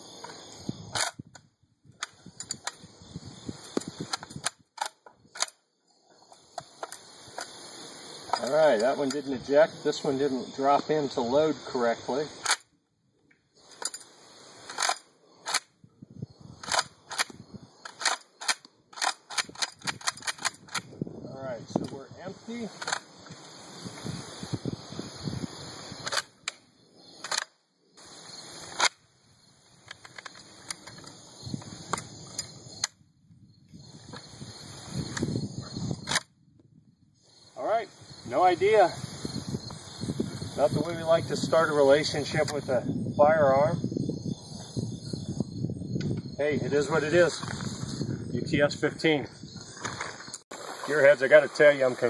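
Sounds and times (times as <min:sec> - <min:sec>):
shotgun pump action clacking: 0:16.6 - 0:20.9.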